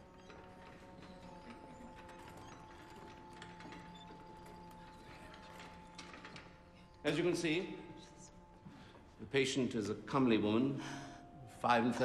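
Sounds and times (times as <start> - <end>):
clicks and creaks of people moving: 0.0 - 12.0.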